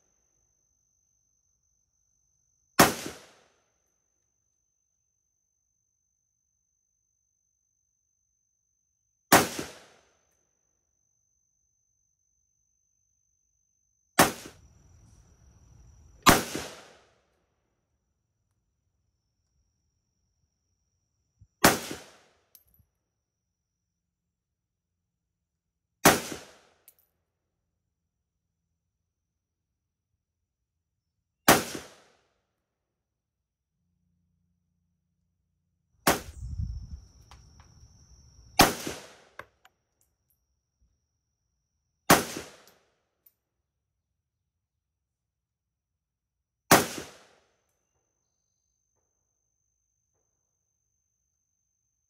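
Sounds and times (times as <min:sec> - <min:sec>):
rifle shot with echo: 0:02.8 - 0:03.5, 0:09.3 - 0:10.0, 0:16.2 - 0:17.1, 0:21.6 - 0:22.3, 0:31.5 - 0:32.1, 0:38.6 - 0:39.4, 0:42.1 - 0:42.7, 0:46.7 - 0:47.4.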